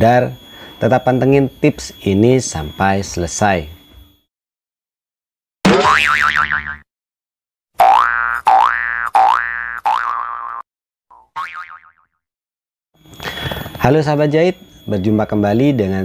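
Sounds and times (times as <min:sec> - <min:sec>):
cartoon boing sound effects: 0:05.7 - 0:06.8, 0:07.8 - 0:12.1.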